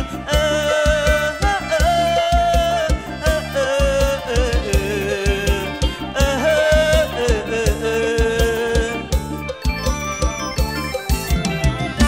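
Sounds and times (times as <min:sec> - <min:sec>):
man singing long wavering notes: 0:00.0 - 0:09.4
live band music: 0:00.0 - 0:12.0
steady drum beat: 0:00.0 - 0:12.0.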